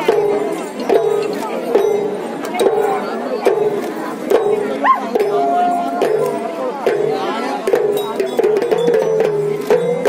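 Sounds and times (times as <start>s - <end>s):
crowd voices: 0.0s - 10.0s.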